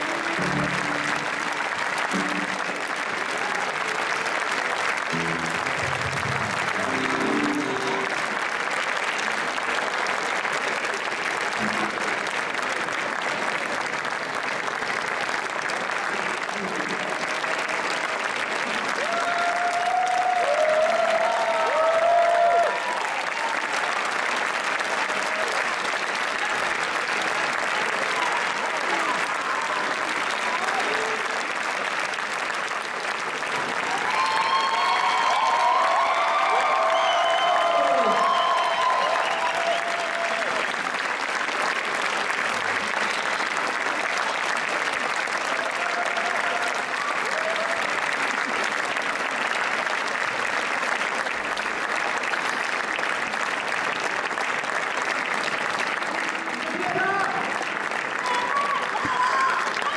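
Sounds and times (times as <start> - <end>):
audience applause: 0.0 - 59.9.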